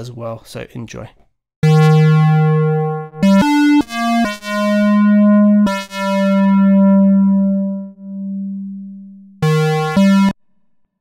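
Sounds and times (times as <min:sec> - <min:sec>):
square-wave synth notes: 0:01.6 - 0:10.4.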